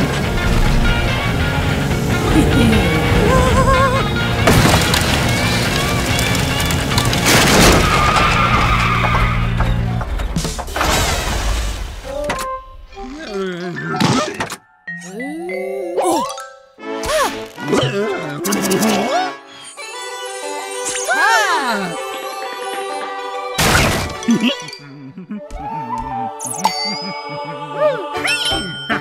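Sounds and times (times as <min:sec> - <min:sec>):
car sound effects: 0:00.0 - 0:09.6
sliding pitch cartoon effects: 0:02.1 - 0:04.3
cartoon music: 0:02.1 - 0:04.4, 0:13.1 - 0:20.0, 0:24.3 - 0:29.0
crashes and sharp impacts: 0:04.4 - 0:12.1.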